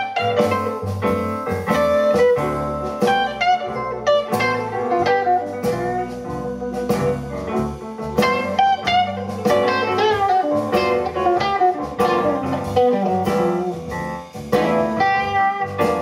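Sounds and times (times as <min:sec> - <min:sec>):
electric guitar bent notes: 0:00.0 - 0:07.6, 0:08.2 - 0:16.0
drums: 0:00.0 - 0:16.0
electric bass: 0:00.0 - 0:16.0.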